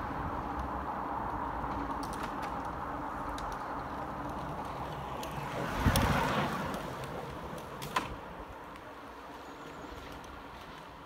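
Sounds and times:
bicycle passing by: 0.0 - 11.0.

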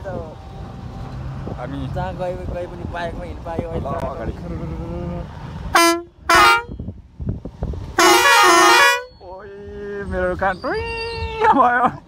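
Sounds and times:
vehicle driving on dirt road: 0.0 - 12.0
vehicle horn honking: 5.7 - 6.8, 8.0 - 9.2.

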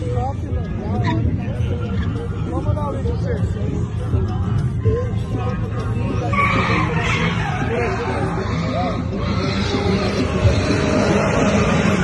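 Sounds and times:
tyres squealing on asphalt: 6.2 - 12.0.

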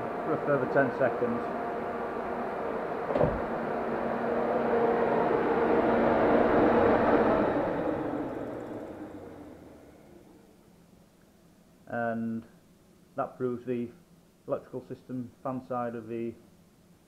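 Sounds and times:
electric radiator fan running: 0.0 - 11.2
thump: 3.1 - 3.6.

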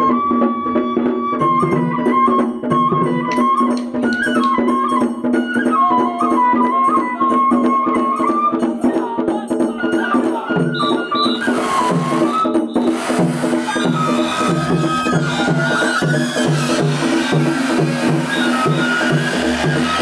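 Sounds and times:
bamboo flute melody: 0.0 - 20.0
drum beat: 10.6 - 20.0.

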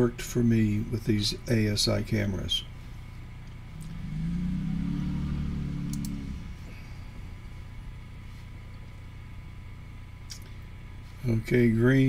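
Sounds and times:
steady background hum: 0.0 - 12.0
low rumble: 3.4 - 8.5
faint clicks: 5.9 - 6.2.

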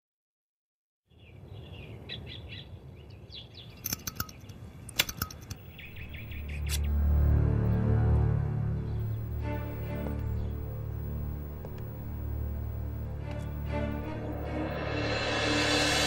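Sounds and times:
birds chirping: 1.1 - 14.7
padlock being picked clicks: 3.8 - 6.0
low tense music: 5.9 - 16.0.

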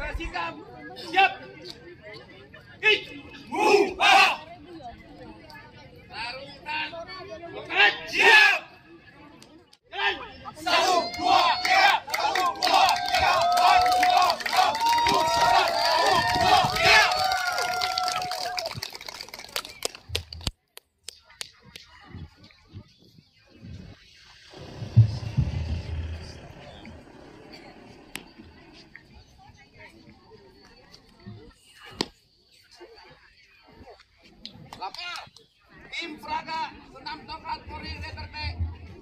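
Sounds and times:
murmur of chatter: 0.0 - 39.0
crowd shouting and cheering: 9.9 - 18.9.

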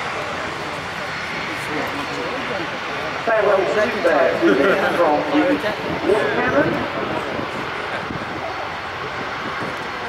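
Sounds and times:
jet engine rush: 0.0 - 10.0.

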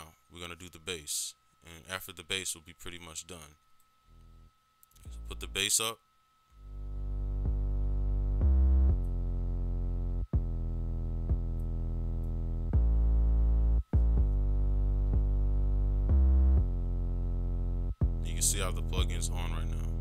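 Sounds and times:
synth bass line: 6.6 - 20.0.

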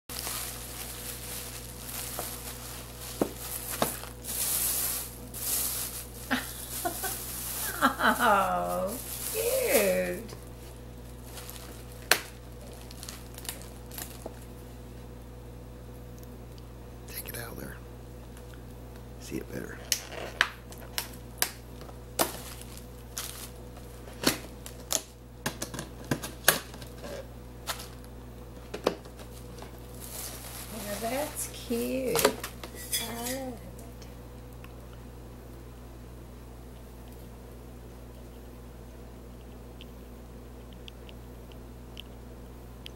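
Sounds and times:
bubble wrap rustling and crinkling: 0.1 - 14.7, 19.8 - 25.1, 25.9 - 28.1, 28.9 - 33.8.

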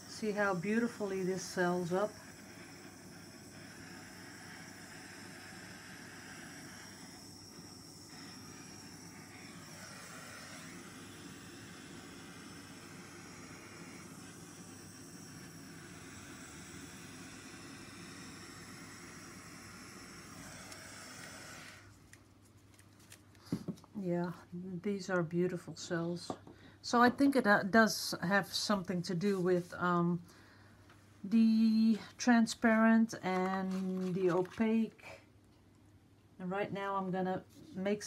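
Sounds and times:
torch flame hissing: 0.0 - 22.0.

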